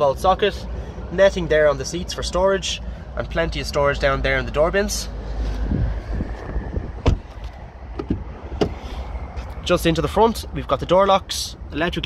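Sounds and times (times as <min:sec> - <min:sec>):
low rumble of movement: 0:05.0 - 0:10.9
car door knocks and thumps: 0:07.0 - 0:07.3, 0:08.0 - 0:08.8.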